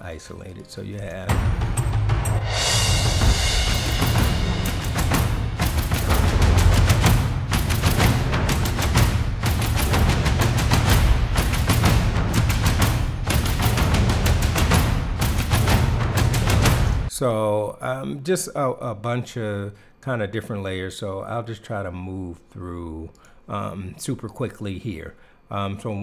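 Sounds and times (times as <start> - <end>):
orchestral percussion drums and cymbals: 1.3 - 17.1.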